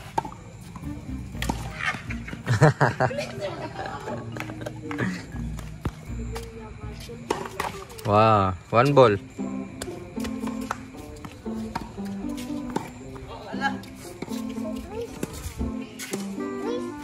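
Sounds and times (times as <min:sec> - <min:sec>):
tennis ball hitting racket and court: 0:00.0 - 0:02.5, 0:07.2 - 0:08.1, 0:09.6 - 0:16.9
background music melody: 0:00.1 - 0:17.0.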